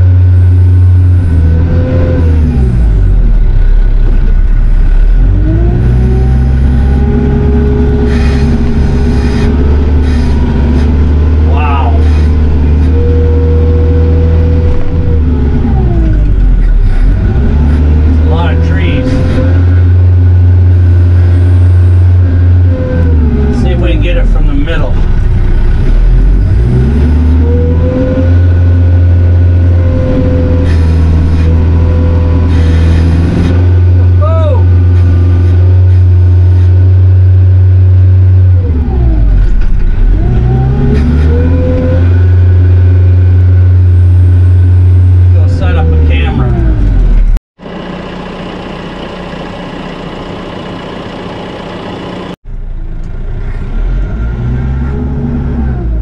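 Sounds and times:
tractor diesel engine working hard: 0.0 - 54.8.

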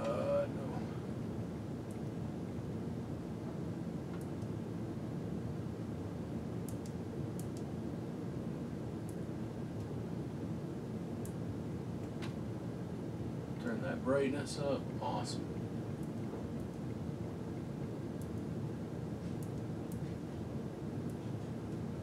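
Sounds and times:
low background hum: 0.0 - 22.0.

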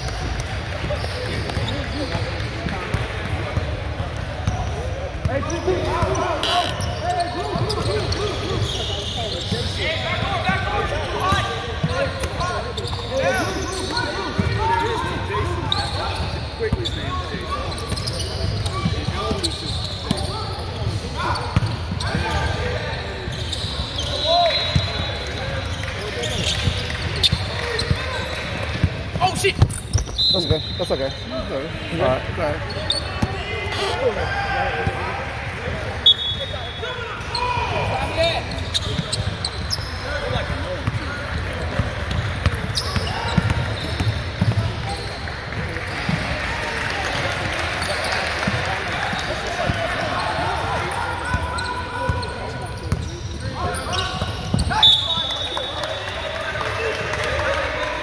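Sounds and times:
sneakers squeaking: 0.0 - 35.1, 35.7 - 58.0
background talk: 0.0 - 58.0.

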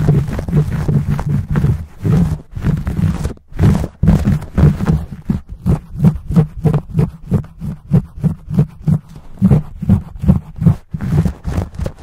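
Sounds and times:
fingertips scratching microphone cover: 0.0 - 12.0.

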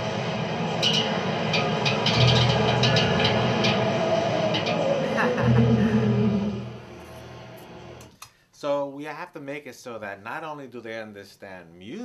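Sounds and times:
synthesized low drone: 0.0 - 8.1.

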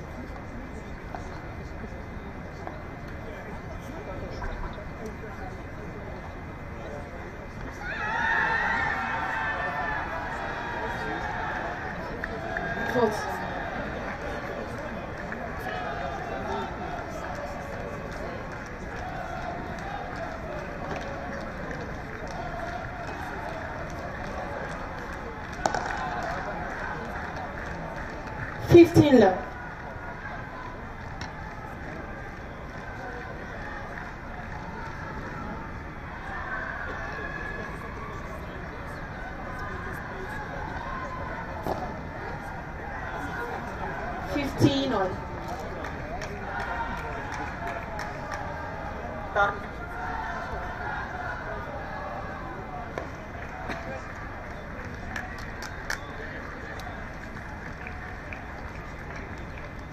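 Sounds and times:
murmur of spectator voices: 0.0 - 59.9.

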